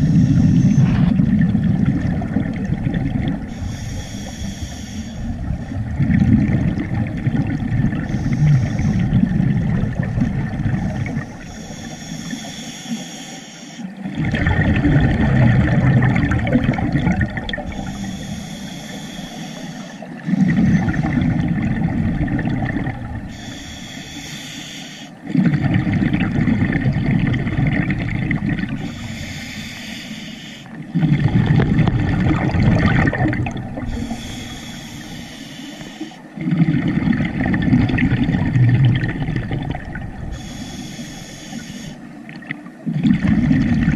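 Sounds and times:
regulator inhale hiss: 0.0s - 1.2s, 3.4s - 5.8s, 7.9s - 9.2s, 10.8s - 13.9s, 17.6s - 21.2s, 23.3s - 25.2s, 28.7s - 30.8s, 33.8s - 36.4s, 40.2s - 42.2s
exhaled bubbles rumbling underwater: 0.0s - 43.9s.

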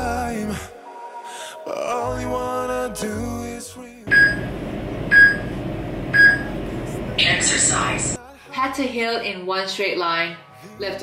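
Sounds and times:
countdown timer beeping: 4.1s - 4.5s, 5.1s - 5.5s, 6.1s - 6.5s.

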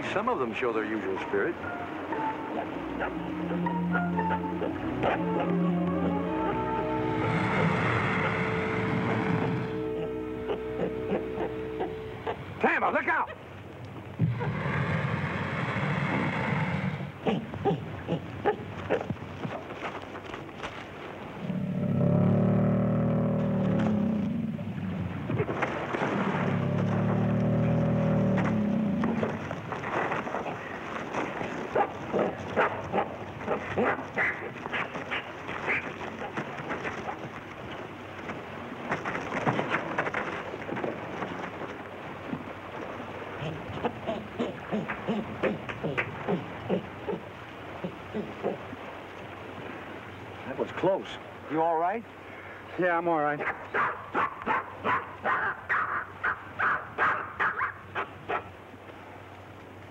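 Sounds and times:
long low growls: 2.6s - 11.6s, 14.2s - 18.2s, 21.4s - 25.3s, 26.1s - 29.4s.

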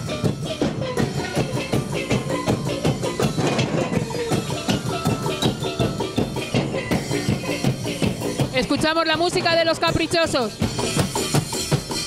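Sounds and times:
drums and cymbals beat: 0.0s - 12.0s
mallet percussion notes: 0.0s - 12.0s.

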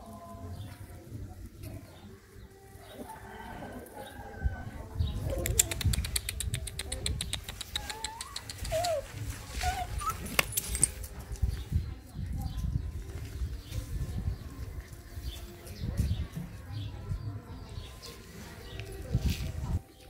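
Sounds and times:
puppy yelps: 7.8s - 10.6s
puppies scuffling on gravel: 7.9s - 16.9s, 17.6s - 20.0s.

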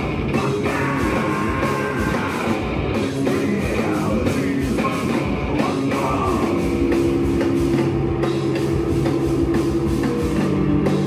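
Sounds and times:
bass guitar: 0.0s - 11.0s
distorted electric guitar: 0.0s - 11.0s
drum kit: 0.0s - 11.0s.

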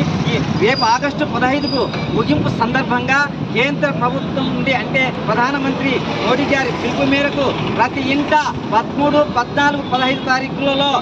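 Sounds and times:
people speaking: 0.0s - 11.0s
street traffic noise: 0.0s - 11.0s.

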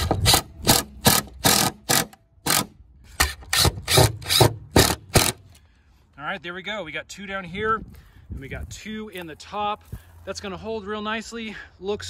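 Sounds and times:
impact driver rattle: 0.0s - 5.5s.

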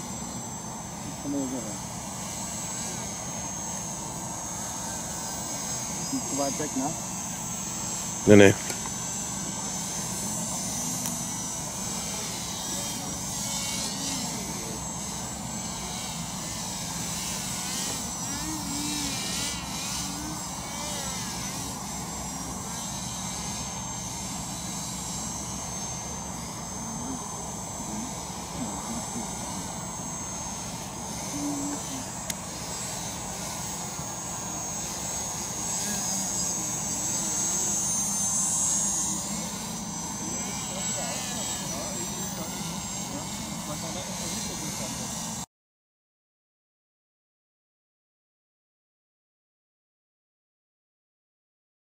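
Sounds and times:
propeller motors whining: 0.0s - 45.4s.

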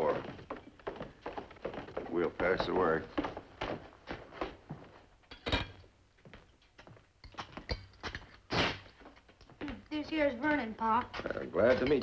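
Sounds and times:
footsteps on wooden floor: 0.0s - 5.2s, 6.2s - 7.7s.

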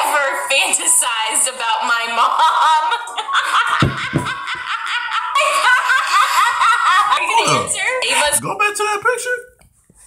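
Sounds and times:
woman laughing: 2.4s - 8.4s.

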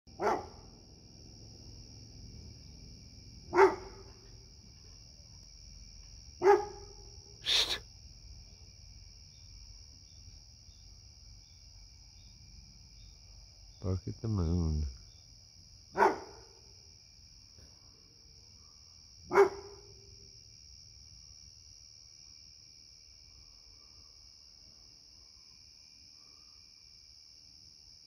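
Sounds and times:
dog barking: 0.1s - 0.7s, 3.5s - 4.3s, 6.4s - 7.1s, 15.9s - 16.7s, 18.6s - 20.1s, 26.1s - 26.6s.

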